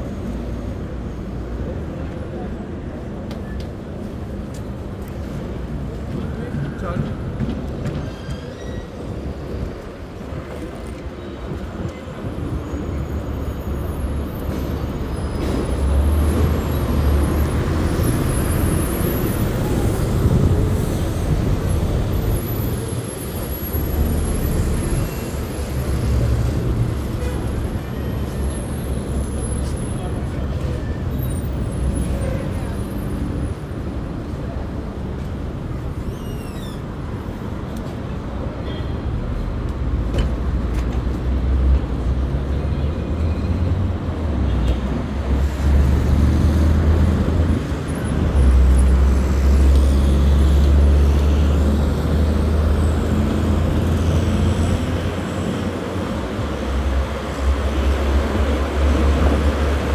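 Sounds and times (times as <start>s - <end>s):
road traffic: 0.0s - 59.9s.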